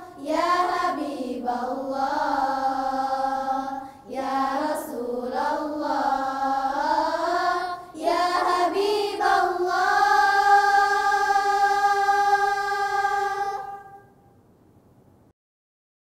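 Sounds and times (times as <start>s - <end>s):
girls choir singing: 0.0s - 14.2s.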